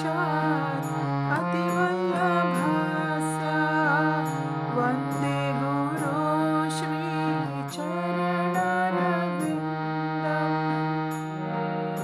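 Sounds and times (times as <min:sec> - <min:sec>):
harmonium melody: 0:00.0 - 0:12.0.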